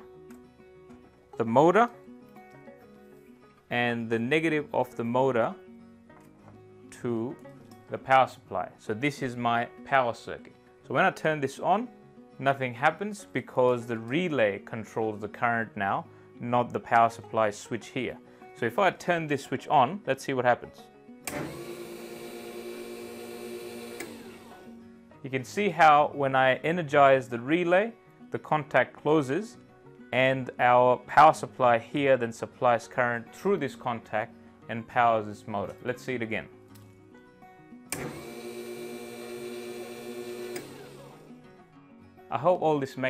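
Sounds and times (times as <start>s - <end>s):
small motor whining: 21.3s - 24.7s, 37.9s - 41.3s.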